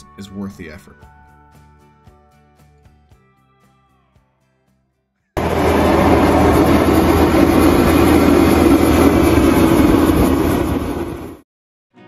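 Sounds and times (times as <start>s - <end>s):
loud steady rumbling: 5.4s - 11.4s.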